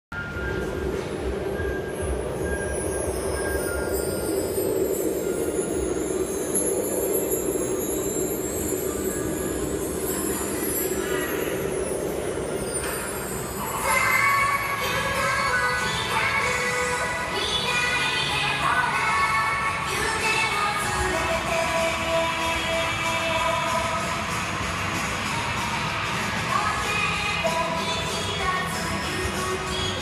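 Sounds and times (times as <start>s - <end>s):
indoor ice rink hall hum: 0.1s - 30.0s
faint high wavering whine: 0.2s - 27.6s.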